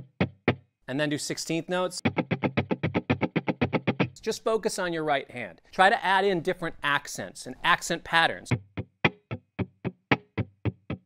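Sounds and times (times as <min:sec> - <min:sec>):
electric guitar strumming: 0:00.0 - 0:00.6, 0:02.0 - 0:04.2, 0:08.5 - 0:11.0.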